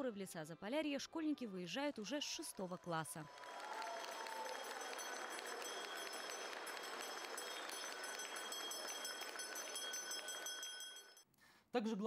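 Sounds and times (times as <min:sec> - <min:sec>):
audience applauding: 0:02.5 - 0:11.2.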